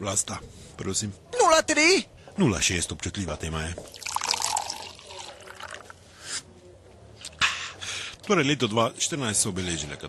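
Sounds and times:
drink being poured: 0:03.8 - 0:06.0.

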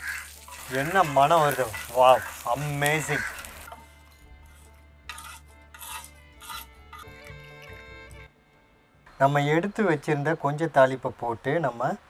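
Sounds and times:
food sizzling in hot oil: 0:00.0 - 0:06.6
metal spoon scraping pan: 0:00.0 - 0:07.2
faint background music: 0:00.1 - 0:12.0.

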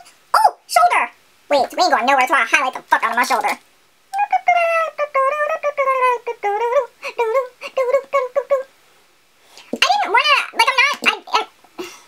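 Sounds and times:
woman singing wordlessly: 0:00.5 - 0:08.7.

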